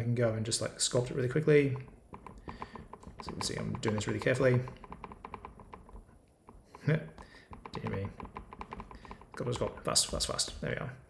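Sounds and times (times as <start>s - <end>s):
man speaking: 0.0s - 1.9s, 3.2s - 4.8s, 6.8s - 7.2s, 7.8s - 8.2s, 9.4s - 11.0s
rapid faint clicking: 1.7s - 10.6s.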